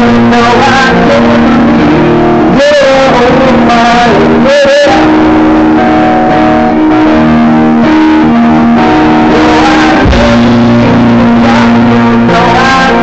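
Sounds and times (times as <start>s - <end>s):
loud live rock band: 0.0s - 13.0s.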